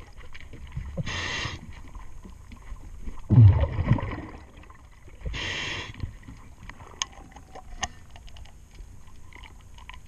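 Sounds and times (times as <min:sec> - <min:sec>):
breathing regulator hissing: 0:05.3 - 0:06.0.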